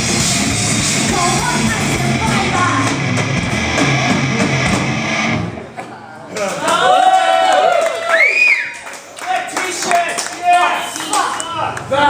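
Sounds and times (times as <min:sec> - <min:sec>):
rock band playing: 0:00.0 - 0:05.8.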